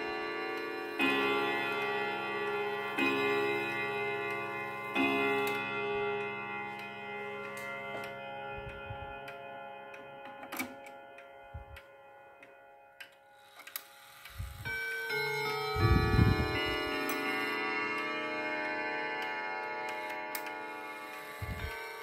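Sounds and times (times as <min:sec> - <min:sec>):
wall clock chime: 0:00.0 - 0:22.0.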